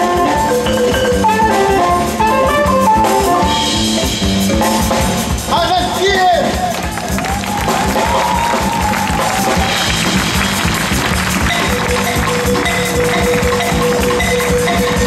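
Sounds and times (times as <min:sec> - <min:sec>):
tenor saxophone: 0:00.0 - 0:03.9
drum kit: 0:00.0 - 0:15.0
electric bass: 0:00.0 - 0:15.0
wooden xylophone: 0:00.4 - 0:03.2, 0:09.5 - 0:15.0.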